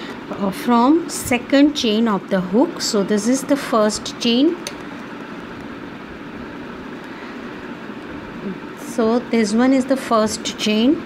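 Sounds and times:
hiss-like hum: 0.0s - 11.0s.

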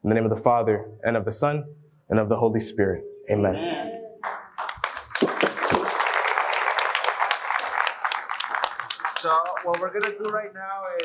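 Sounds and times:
crowd applauding: 4.2s - 11.0s.

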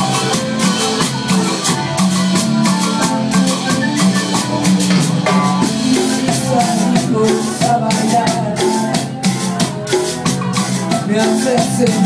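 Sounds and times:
drum kit beat: 0.0s - 12.0s
electric bass: 0.0s - 12.0s
guitar: 0.0s - 12.0s.

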